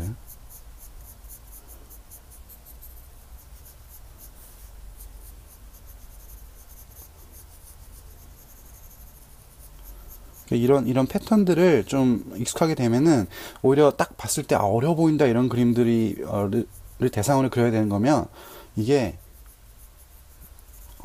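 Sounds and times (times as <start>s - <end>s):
pencil scratching on paper: 0.0s - 21.0s.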